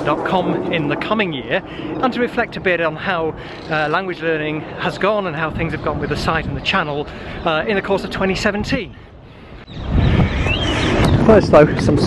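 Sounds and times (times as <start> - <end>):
wind buffeting microphone: 0.0 - 12.0
bird chirp: 3.4 - 11.4.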